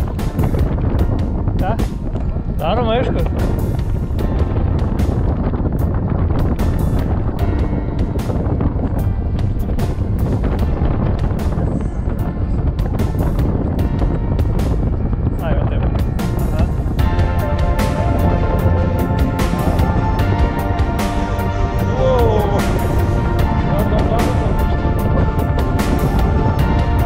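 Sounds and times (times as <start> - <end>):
background music: 0.0 - 27.0
wind rumble on microphone: 0.0 - 27.0.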